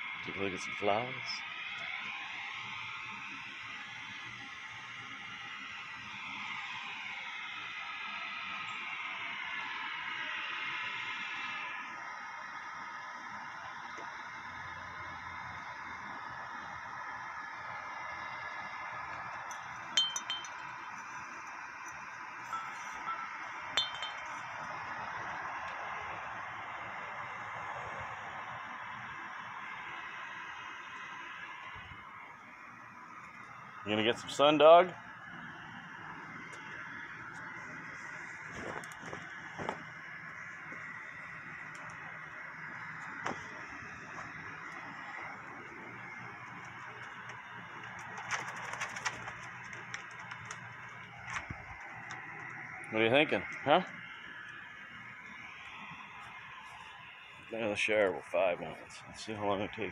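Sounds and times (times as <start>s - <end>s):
wind chimes ringing: 19.4s - 21.0s, 21.9s - 24.5s
sharp chime clinks: 20.0s - 20.7s, 22.5s - 24.4s.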